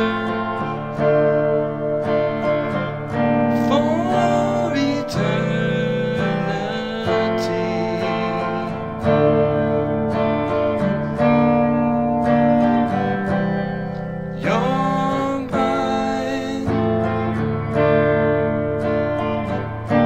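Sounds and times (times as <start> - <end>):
person singing: 0.0 - 18.2
electric guitar chords: 0.0 - 20.0.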